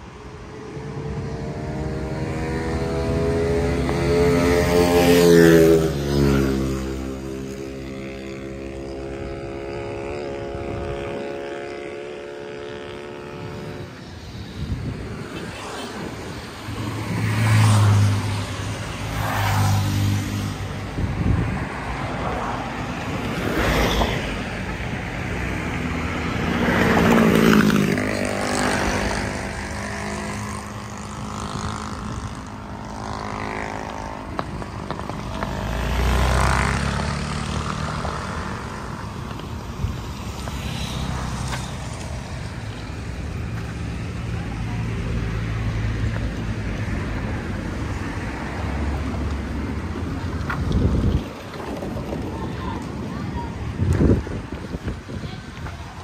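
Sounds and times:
vehicles passing by: 0.0s - 56.0s.

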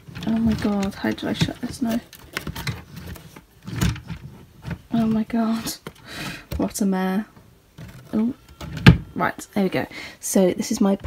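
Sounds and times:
wooden drawer scraping: 0.0s - 5.9s, 7.8s - 9.1s.

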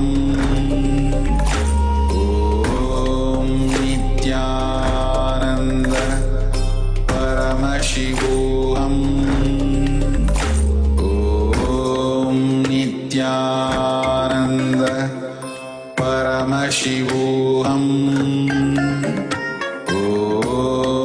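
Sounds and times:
devotional chanting with music: 0.0s - 21.0s.

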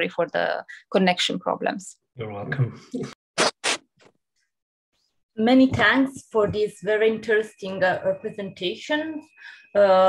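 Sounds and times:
short scratching noises: 3.4s - 4.0s.

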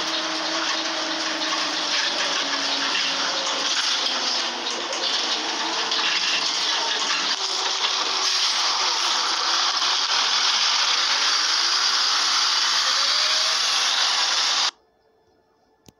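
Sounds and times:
bus pulling away rushing noise: 0.0s - 14.7s.

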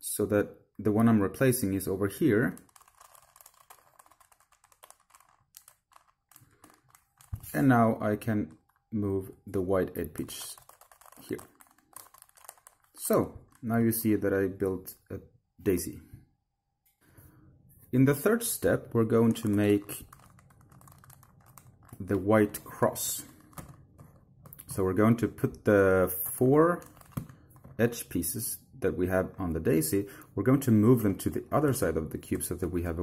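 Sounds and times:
puzzle cube plastic clicking: 2.5s - 7.6s, 10.1s - 13.7s, 19.3s - 24.7s.

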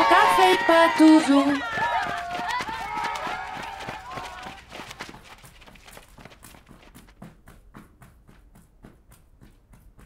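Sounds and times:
crowd shouting: 0.0s - 5.2s
running footsteps: 0.0s - 10.0s.

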